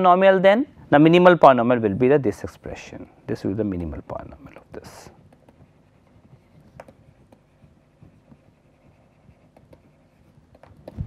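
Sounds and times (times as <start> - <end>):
pen scratching on paper: 5.2 - 11.0.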